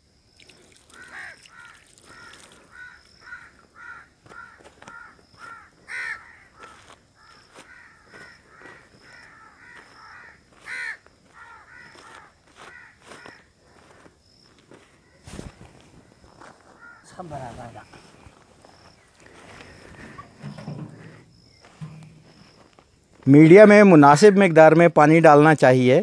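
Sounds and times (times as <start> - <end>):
crows cawing: 0.8 - 15.2, 16.0 - 17.3.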